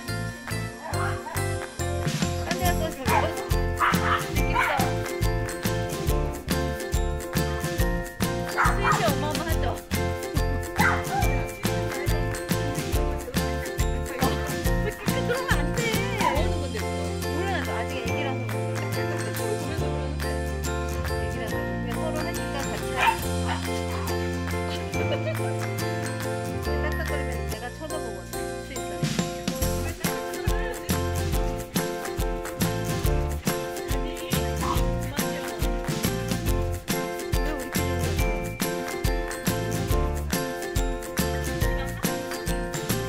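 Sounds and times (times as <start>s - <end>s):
background music with steady beat: 0.0s - 43.0s
small dogs barking: 3.1s - 5.0s, 8.5s - 9.1s, 10.8s - 11.4s, 23.0s - 23.7s.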